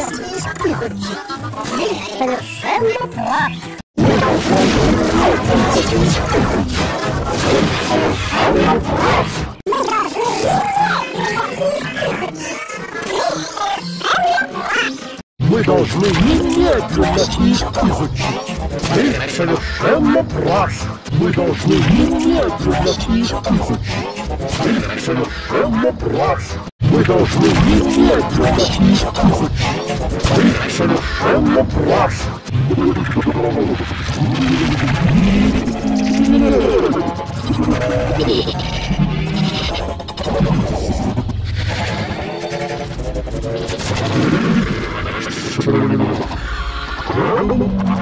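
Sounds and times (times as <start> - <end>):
background music: 0.0 - 48.0
distorted pitch-shifted cartoon voice: 0.0 - 48.0.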